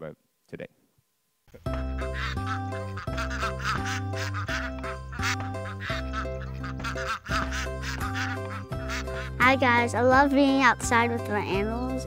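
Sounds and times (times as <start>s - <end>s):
background music with bass: 1.6s - 12.0s
ducks quacking: 2.0s - 9.6s.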